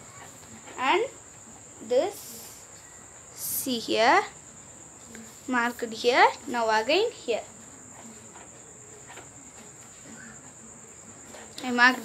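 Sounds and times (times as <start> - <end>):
crickets chirring: 0.0 - 12.0.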